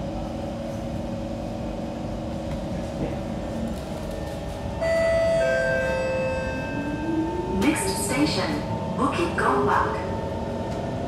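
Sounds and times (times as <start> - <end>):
train equipment humming: 0.0 - 11.0.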